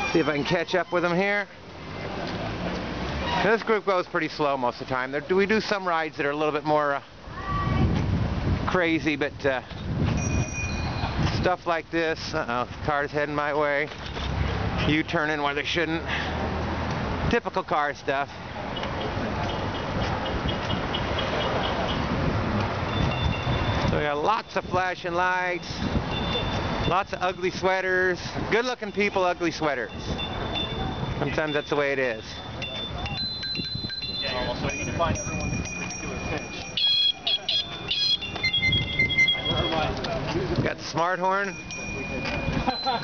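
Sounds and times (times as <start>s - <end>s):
road noise: 0.0s - 43.0s
bicycle bells ringing: 10.1s - 11.2s, 22.9s - 23.9s, 25.6s - 27.5s, 29.8s - 40.0s, 41.1s - 43.0s
short high beeps: 22.9s - 23.9s, 26.1s - 27.0s, 29.9s - 39.9s, 41.5s - 43.0s.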